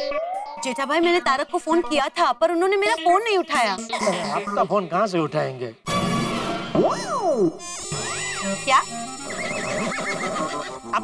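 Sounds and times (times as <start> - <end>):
wavering comic call effect: 6.8 - 10.8.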